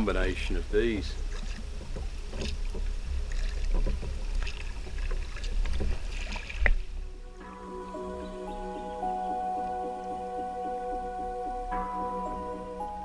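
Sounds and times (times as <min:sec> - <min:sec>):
paddle splashing water: 0:00.0 - 0:07.1
steady low rumble: 0:06.6 - 0:13.0.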